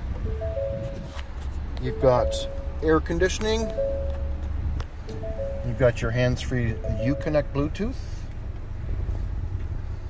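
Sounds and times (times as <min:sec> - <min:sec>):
car engine idling: 0:01.8 - 0:10.0.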